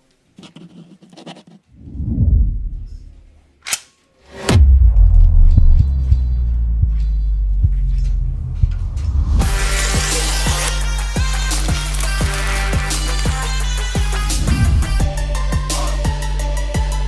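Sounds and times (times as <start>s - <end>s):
low whoosh: 1.8s - 3.3s, 4.4s - 9.6s
hard hit: 4.4s - 6.9s
loud low drone: 4.5s - 11.2s, 12.7s - 15.7s.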